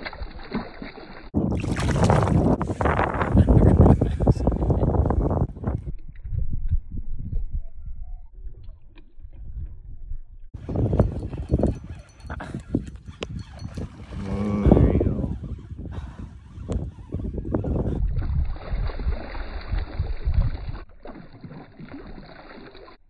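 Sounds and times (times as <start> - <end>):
wind buffeting microphone: 1.4 - 20.9.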